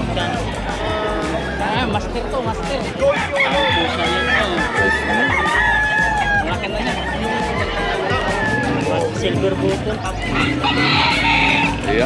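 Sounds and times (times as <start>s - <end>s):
roosters crowing and clucking: 2.9s - 12.0s.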